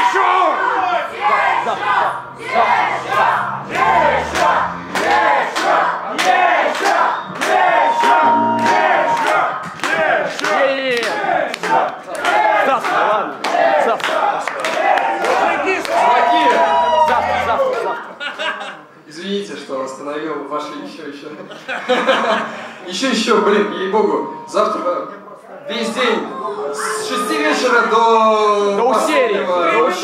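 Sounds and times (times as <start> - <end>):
crowd shouting and chanting: 0.0 - 18.3
sharp regular hits: 1.1 - 10.2
voice holding a long note: 1.8 - 5.9, 8.0 - 9.3, 16.0 - 18.0.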